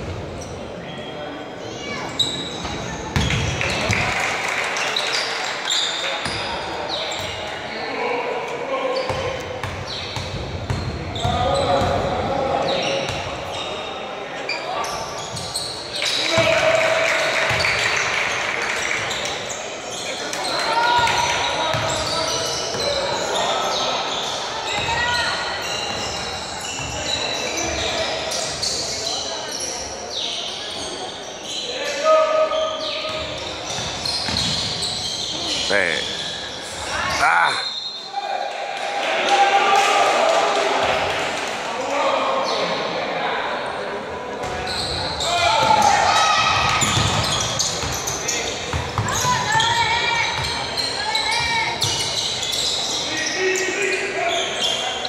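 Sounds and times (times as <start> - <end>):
players shouting in echoing hall: 0.1 - 55.0
basketball bouncing on court: 2.6 - 4.0, 9.1 - 12.2, 17.5 - 17.8, 33.1 - 34.8, 45.6 - 49.8.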